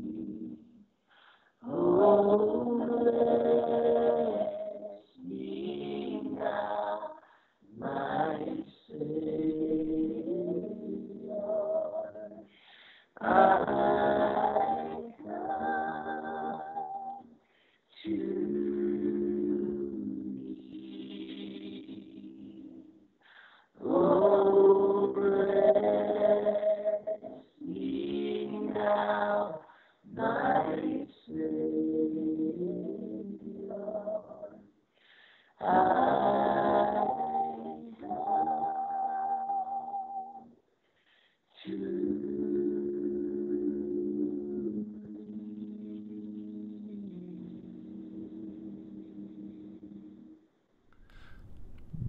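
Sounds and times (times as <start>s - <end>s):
people singing in harmony: 0.0s - 0.8s, 1.6s - 23.0s, 23.6s - 34.7s, 35.5s - 40.5s, 41.6s - 50.4s.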